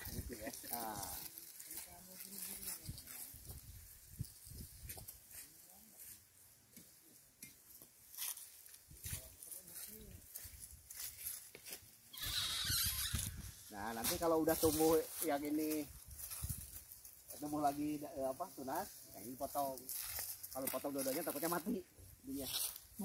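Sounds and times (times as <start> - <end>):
branch rustling through leaves: 0.0 - 6.2, 8.1 - 23.0.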